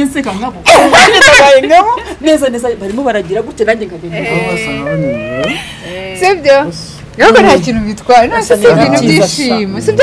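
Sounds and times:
person speaking: 4.2s - 5.6s
person making wavering whines: 4.3s - 5.7s.

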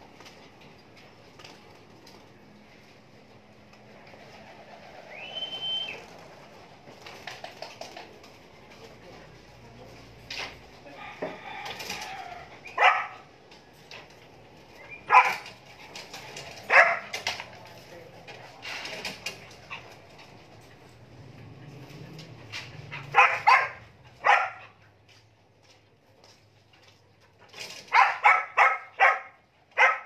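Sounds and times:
dog barking: 12.7s - 13.3s, 15.1s - 15.5s, 16.7s - 17.2s, 22.9s - 24.8s, 27.9s - 30.0s.

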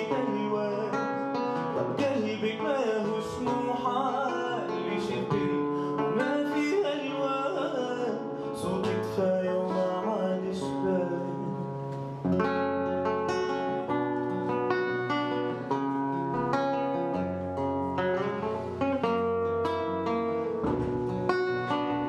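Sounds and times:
fingerpicked classical guitar: 0.0s - 22.0s.

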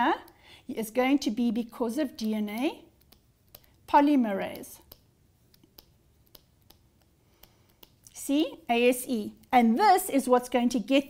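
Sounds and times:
stylus tapping on pen tablet: 2.1s - 8.2s.

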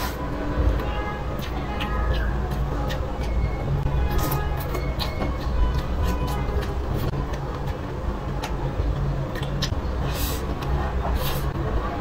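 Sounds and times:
wet chewing mouth sounds: 1.4s - 8.6s, 9.3s - 11.5s.

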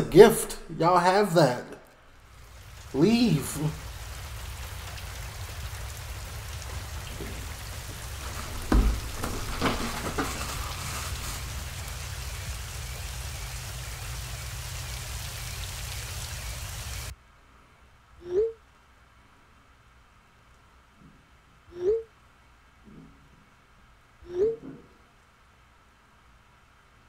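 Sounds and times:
heavy rain splashing on windows: 2.2s - 17.1s
thumps: 6.7s - 13.1s.

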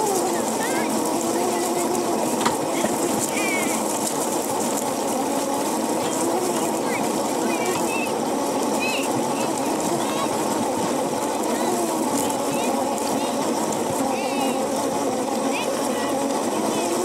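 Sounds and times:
electric go-kart motor whirring: 0.0s - 17.0s.

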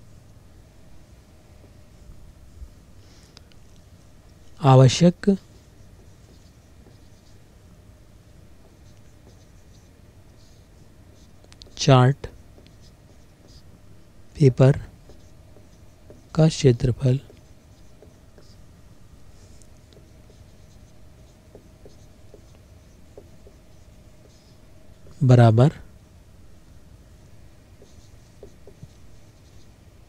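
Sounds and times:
faint steady hum: 0.0s - 30.0s
marker writing on whiteboard: 5.1s - 25.2s, 27.6s - 29.8s.

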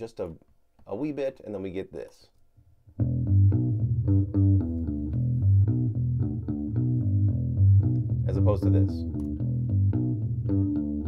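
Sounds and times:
electric bass played with pick: 2.9s - 11.0s.

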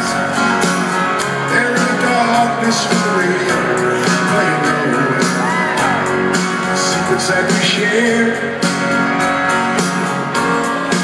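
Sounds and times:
acoustic guitar strumming: 0.0s - 11.0s
electric guitars: 0.0s - 11.0s.

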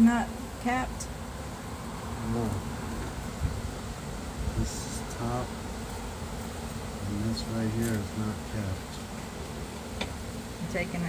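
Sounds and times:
bees buzzing: 0.0s - 11.0s.

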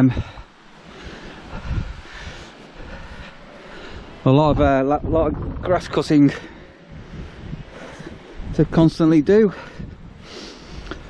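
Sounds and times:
wind rumbling on microphone: 0.0s - 11.0s
low thumps: 4.5s - 6.2s.

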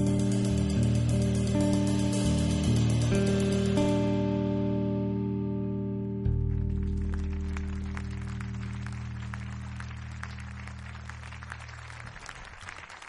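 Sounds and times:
electric bass notes and chords: 0.0s - 12.7s.

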